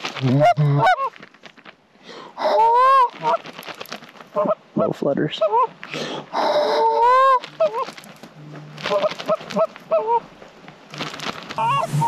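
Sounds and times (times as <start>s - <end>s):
goose clucking: 0.2s - 1.1s, 2.4s - 3.4s, 4.3s - 8.0s, 8.8s - 10.3s, 11.6s - 12.0s
goose honking: 0.3s - 1.1s, 2.4s - 3.4s, 4.4s - 5.7s, 6.4s - 7.9s, 8.8s - 10.2s, 11.6s - 12.0s.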